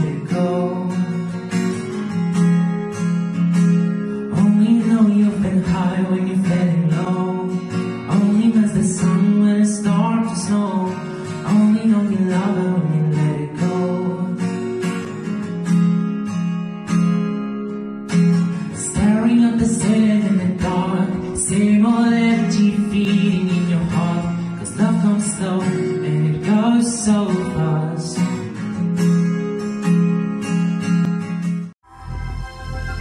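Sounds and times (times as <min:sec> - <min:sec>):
man singing: 0:00.0 - 0:01.8, 0:04.1 - 0:14.8, 0:18.6 - 0:28.6
strummed acoustic guitar: 0:00.0 - 0:33.0.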